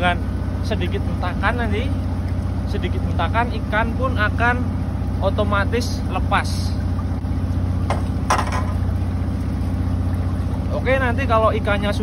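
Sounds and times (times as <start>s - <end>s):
boat engine idling: 0.0s - 12.0s.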